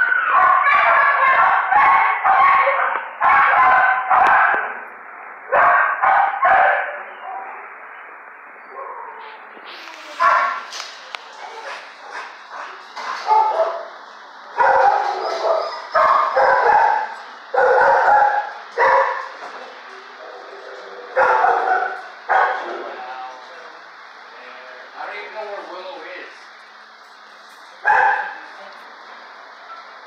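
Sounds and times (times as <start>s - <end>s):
dog barking: 0.2s - 4.8s, 5.5s - 7.6s, 10.2s - 10.7s, 11.4s - 13.9s, 14.5s - 19.4s, 21.1s - 22.7s, 27.8s - 28.4s.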